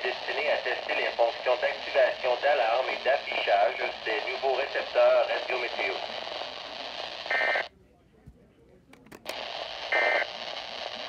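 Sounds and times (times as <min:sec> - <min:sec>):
radio broadcast hiss: 0:00.0 - 0:07.7, 0:09.3 - 0:11.0.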